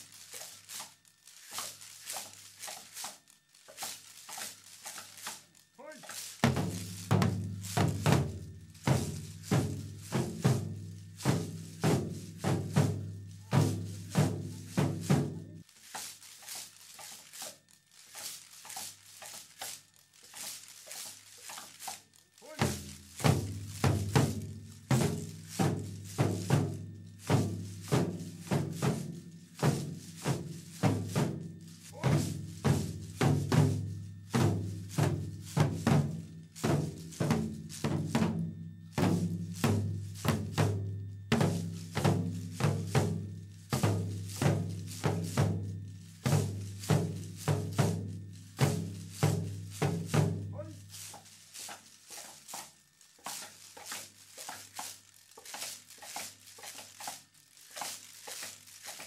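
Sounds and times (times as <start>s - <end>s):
drum beats: 3.7s - 17.5s, 18.2s - 57.2s.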